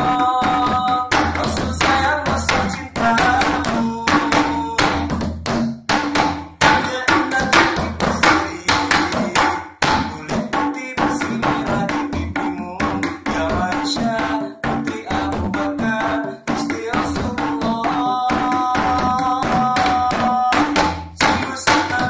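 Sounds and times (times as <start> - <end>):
man singing: 0.0 - 5.2, 6.6 - 22.0
hand drum rhythm: 0.0 - 22.0.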